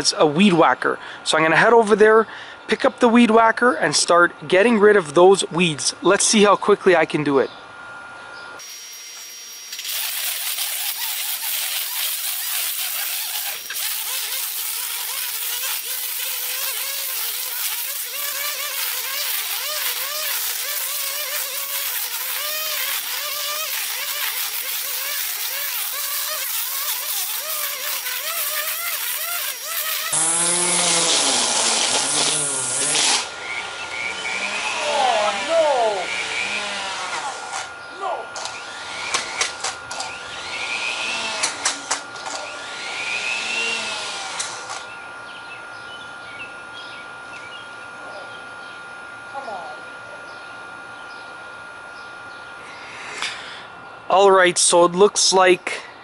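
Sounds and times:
electric string trimmer whine: 7.8s - 56.0s
trimmer line ticking on stalks: 9.2s - 31.2s.

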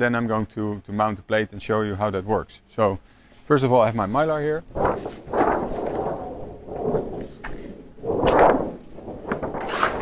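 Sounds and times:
plastic film sheet swishing: 4.6s - 10.0s.

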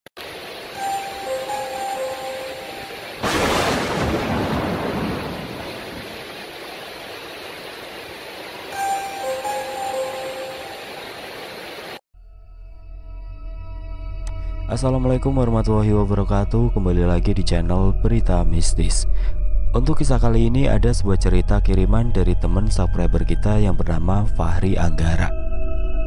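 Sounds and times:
rain-like hiss: 0.2s - 12.0s
thunder clap rumbling: 3.2s - 6.4s.

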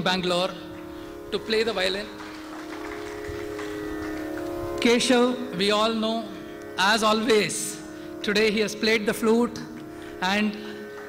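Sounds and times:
steady drone: 0.0s - 11.0s.

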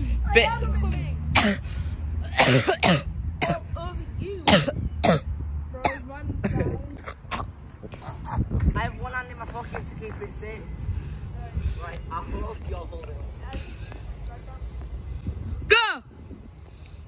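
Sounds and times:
person coughing: 2.3s - 3.6s, 4.4s - 5.2s.

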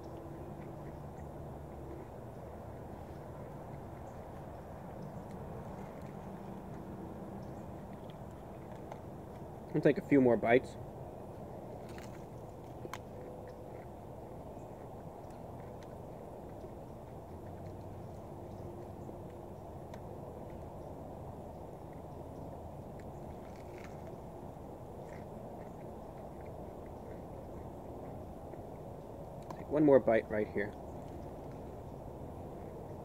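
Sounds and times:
crunching and chewing: 0.0s - 33.0s
low outdoor hum: 0.0s - 33.0s.

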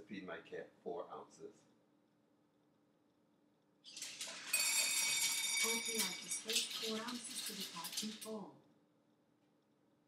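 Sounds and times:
kibble rattling into bowl: 3.9s - 8.4s.

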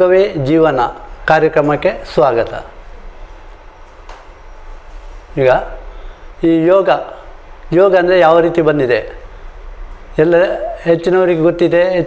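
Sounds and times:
faint hiss: 0.0s - 12.0s
steady low hum: 0.0s - 12.0s.

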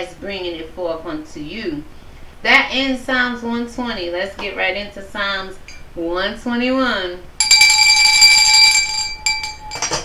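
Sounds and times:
bell-like ringing tone: 7.4s - 10.0s.

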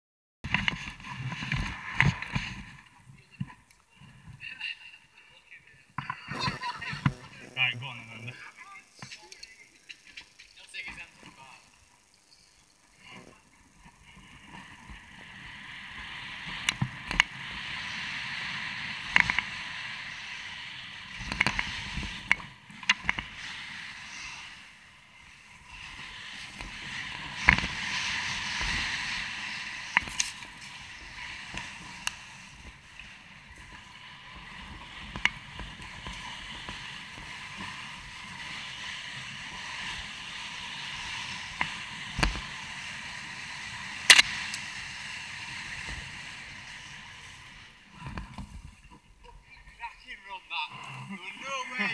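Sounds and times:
tyre and wind rush: 0.4s - 3.0s, 13.7s - 50.4s.

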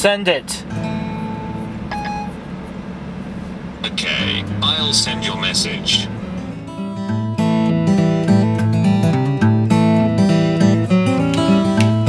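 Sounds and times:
steady low hum: 0.0s - 9.0s
person speaking a command: 3.8s - 6.1s.

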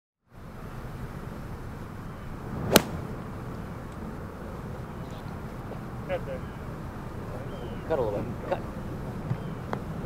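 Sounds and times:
outdoor background noise: 0.2s - 10.0s
golf club striking ball: 2.6s - 3.4s.

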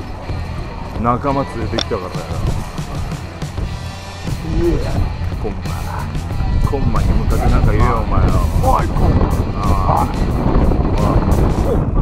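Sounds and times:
background music: 0.0s - 12.0s
wind rumbling on microphone: 0.0s - 12.0s.

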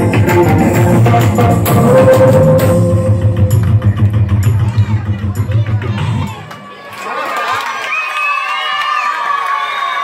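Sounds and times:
person singing: 0.0s - 6.4s.

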